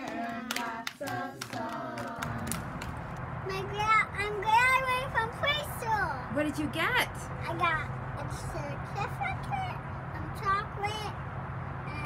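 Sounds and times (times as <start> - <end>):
young children singing: 0.0 - 2.5
hand claps: 0.0 - 3.2.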